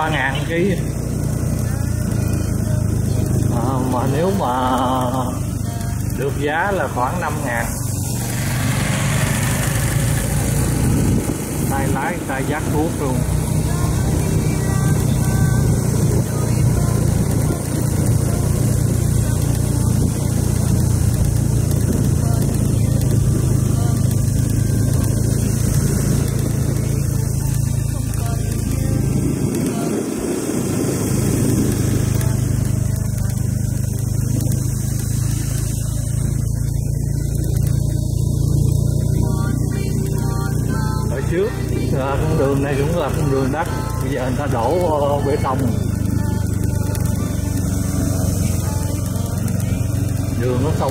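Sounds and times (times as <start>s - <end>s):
small motorbike engine running: 0.0s - 50.9s
wind and road noise: 0.0s - 50.9s.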